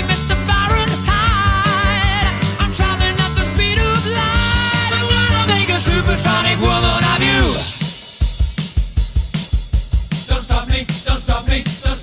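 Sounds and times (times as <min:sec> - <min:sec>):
drum kit beat: 0:00.0 - 0:12.0
held music chord: 0:02.4 - 0:07.8.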